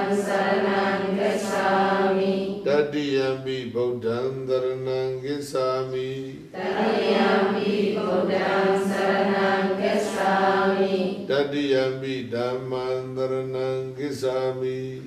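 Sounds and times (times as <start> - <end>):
group chanting in unison: 0.0 - 3.1, 5.9 - 13.8.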